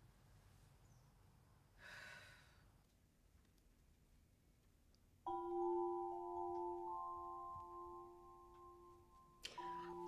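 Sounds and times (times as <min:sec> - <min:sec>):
woman sighing: 0:01.8 - 0:02.6.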